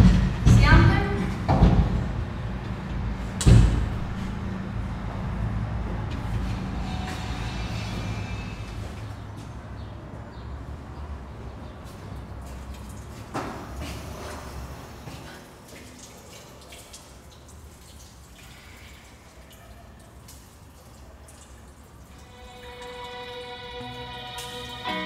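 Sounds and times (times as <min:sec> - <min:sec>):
low room rumble: 0:00.0 - 0:09.4
organ-like music chords: 0:22.4 - 0:25.0.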